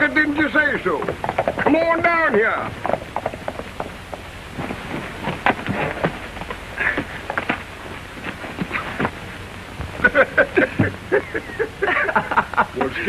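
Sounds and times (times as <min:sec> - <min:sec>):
horse hooves clopping on dirt: 0:00.0 - 0:12.0
film soundtrack hiss: 0:00.0 - 0:13.0.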